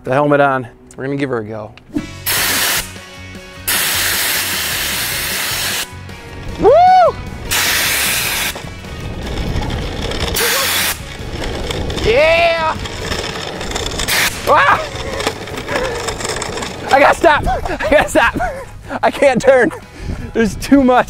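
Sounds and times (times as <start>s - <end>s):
fire extinguisher hissing blasts: 2.0s - 3.0s, 3.7s - 5.9s, 7.5s - 8.6s, 10.4s - 11.0s
rising and falling whoop: 6.6s - 7.3s.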